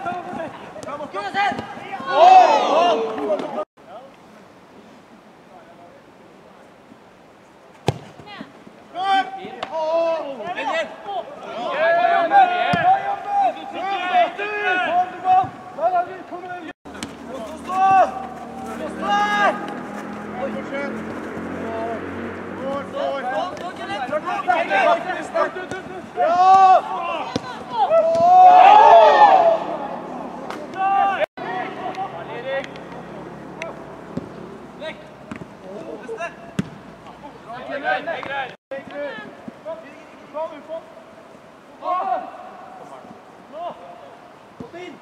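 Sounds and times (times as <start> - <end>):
voices shouting: 0.0 - 3.7, 8.9 - 16.7, 17.3 - 34.0
football kicked thump: 7.8 - 8.4, 36.6 - 36.9.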